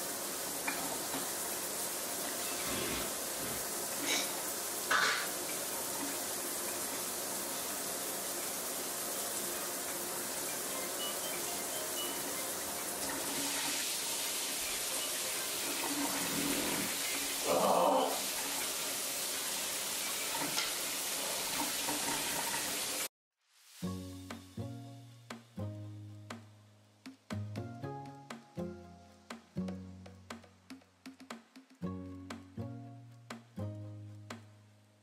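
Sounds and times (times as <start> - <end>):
running water from a tap: 0.0 - 23.1
music: 10.4 - 13.4, 14.3 - 17.0, 23.8 - 35.0.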